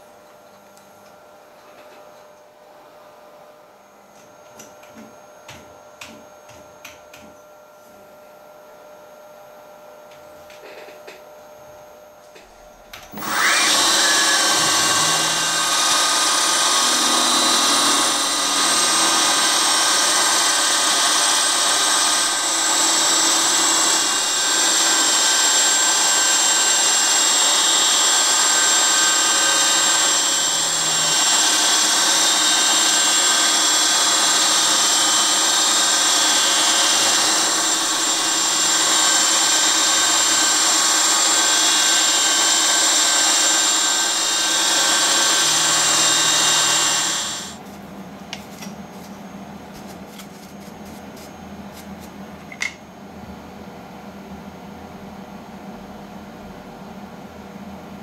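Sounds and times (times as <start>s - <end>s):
milling spindle whine: 12.6s - 47.6s
cutter milling steel: 13.0s - 47.6s.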